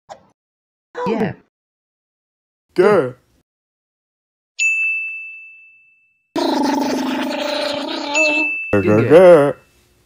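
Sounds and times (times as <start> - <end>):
bright bell-like ding: 4.6 - 6.2, 8.3 - 9.7.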